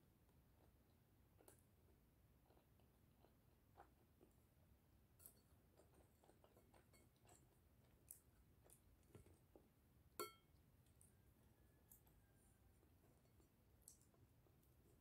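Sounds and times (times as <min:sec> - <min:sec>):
quiet chewing: 0:00.2 - 0:09.9, 0:10.5 - 0:15.0
spoon tapping a plate: 0:10.2 - 0:10.5.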